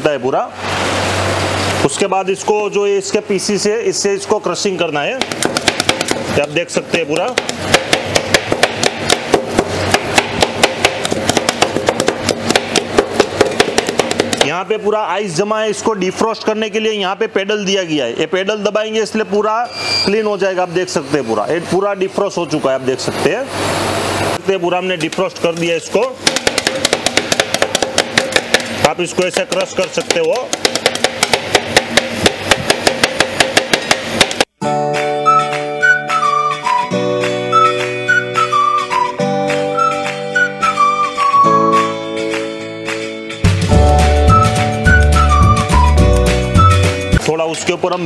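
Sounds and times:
background music with flute-like notes: 0:34.6 - 0:47.2.

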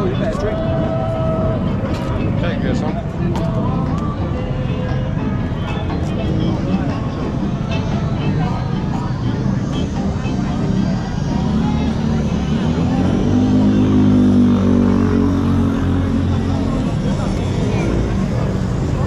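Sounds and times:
street noise: 0:00.0 - 0:19.0
voices: 0:00.0 - 0:19.0.

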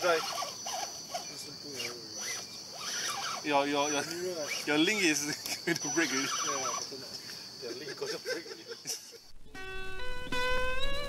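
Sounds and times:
quiet voices talking: 0:01.1 - 0:08.7.

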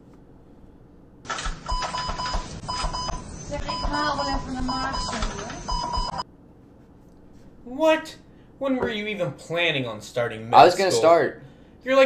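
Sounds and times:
rapid high electronic beeps: 0:01.7 - 0:06.2.

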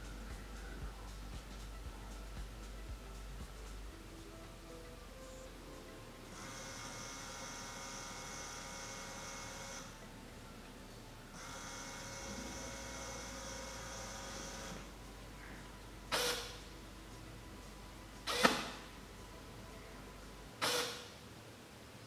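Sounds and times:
small motor fan whine: 0:00.0 - 0:22.0.

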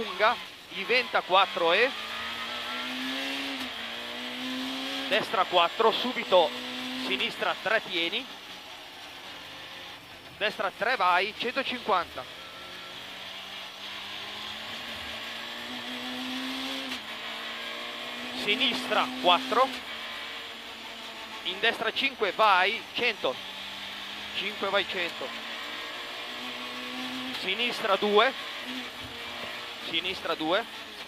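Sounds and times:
car engine from inside cockpit: 0:00.0 - 0:31.0.

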